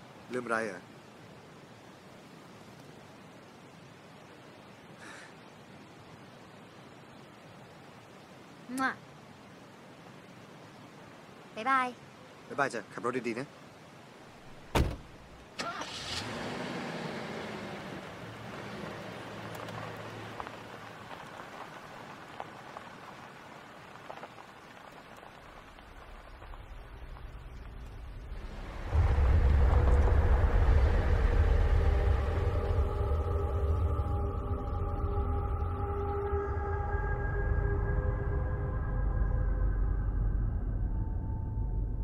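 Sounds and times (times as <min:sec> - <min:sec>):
car engine pulling away: 0:15.6 - 0:22.0
music with deep drone: 0:28.8 - 0:42.0.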